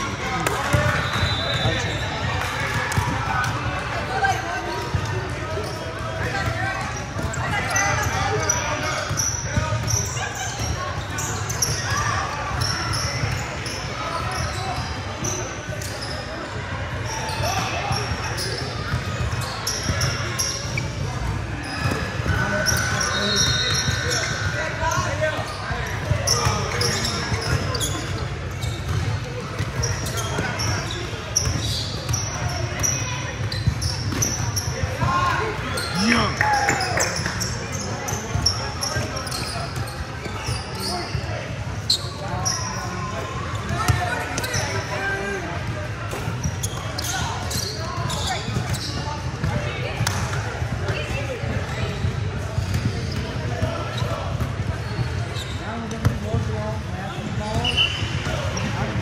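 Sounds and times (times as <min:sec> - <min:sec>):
sneaker squeaks: 0:00.0 - 0:59.0.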